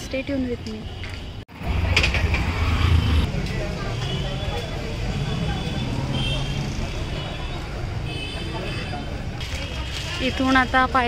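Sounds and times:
motorbike and scooter traffic: 0:00.0 - 0:11.0
crowd voices: 0:01.5 - 0:11.0.

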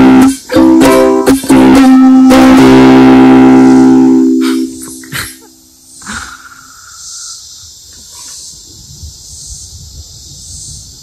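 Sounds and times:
effects-processed ukulele chord: 0:00.0 - 0:05.8.

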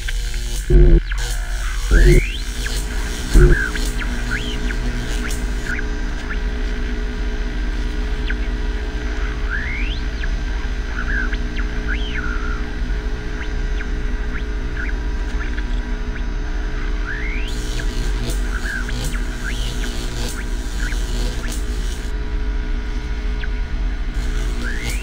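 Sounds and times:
low ambient drone: 0:00.0 - 0:25.0.

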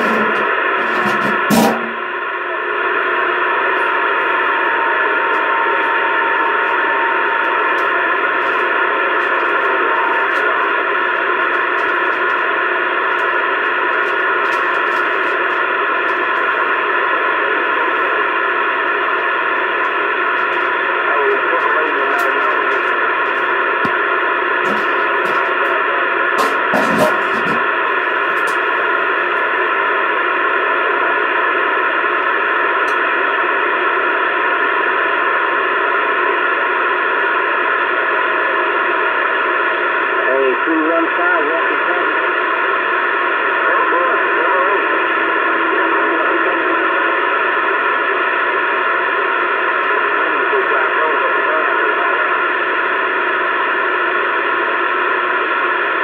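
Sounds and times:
radio static hiss: 0:00.0 - 0:56.0
thin steady whistle: 0:03.8 - 0:08.3.

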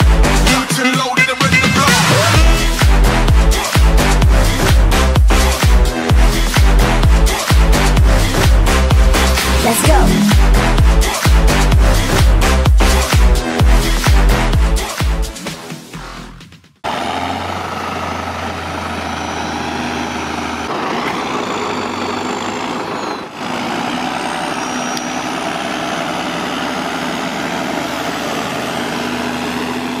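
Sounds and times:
tractor diesel engine running: 0:16.8 - 0:30.0.

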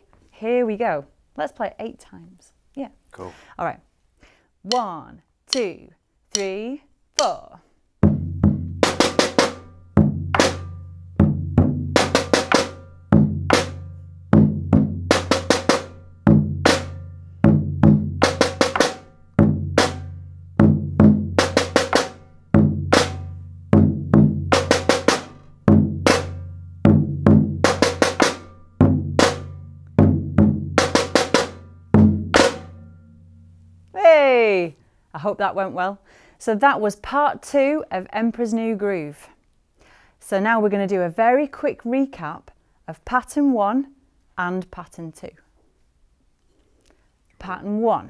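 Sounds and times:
bass drum booms: 0:08.0 - 0:09.0, 0:20.6 - 0:21.8, 0:28.8 - 0:33.0.

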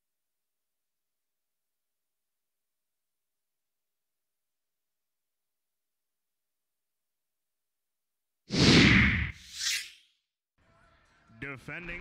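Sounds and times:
short high swish: 0:08.5 - 0:10.1.

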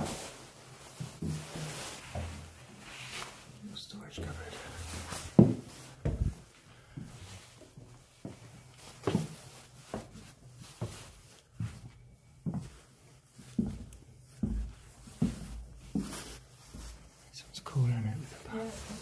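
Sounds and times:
footsteps thudding indoors: 0:00.0 - 0:02.9, 0:04.2 - 0:17.2.

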